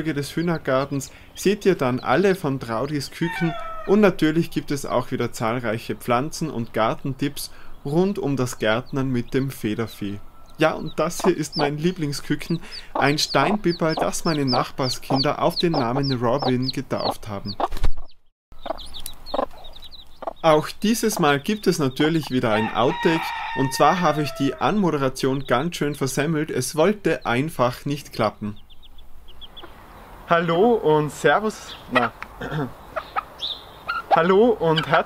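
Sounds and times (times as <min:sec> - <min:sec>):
chicks peeping: 0:00.0 - 0:35.0
hen clucking: 0:00.0 - 0:35.0.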